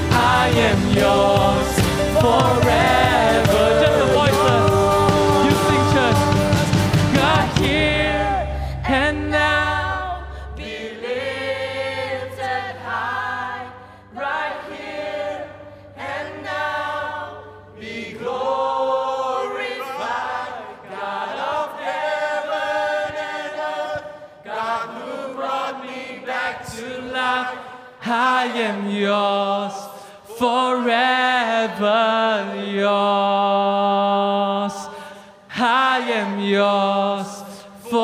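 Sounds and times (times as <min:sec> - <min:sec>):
congregation singing worship song: 0:00.0 - 0:38.0.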